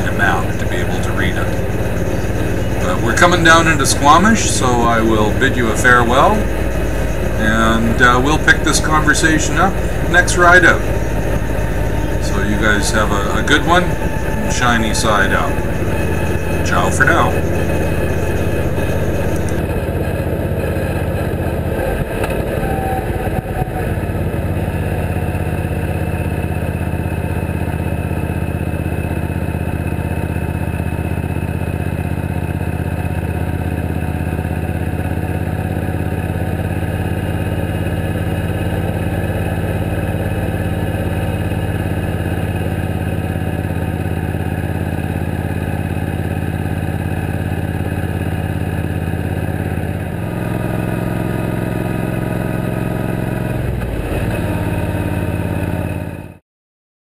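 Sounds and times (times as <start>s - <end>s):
motorcycle engine running: 0.0s - 56.4s.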